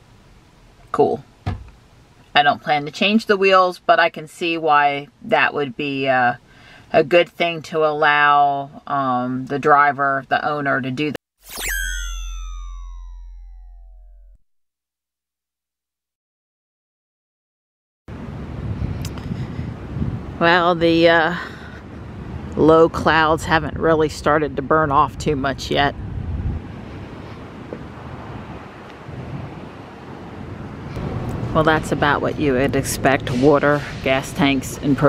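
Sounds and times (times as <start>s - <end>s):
electronic tones gliding downward: 11.4s - 14.4s
low hum: 11.5s - 14.4s
wind on microphone: 18.1s - 34.9s.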